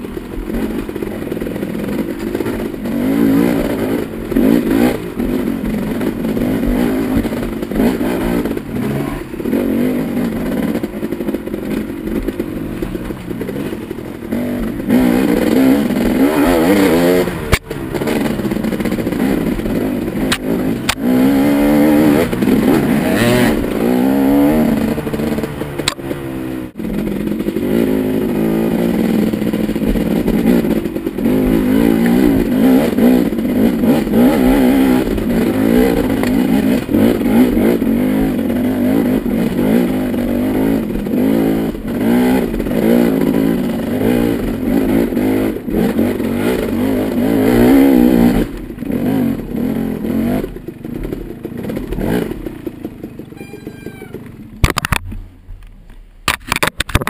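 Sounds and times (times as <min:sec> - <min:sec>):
dirt bike engine revving: 0:00.0 - 0:54.8.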